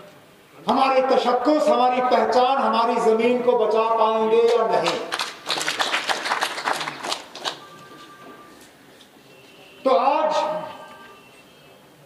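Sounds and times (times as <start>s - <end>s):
crowd applauding: 4.8s - 7.8s.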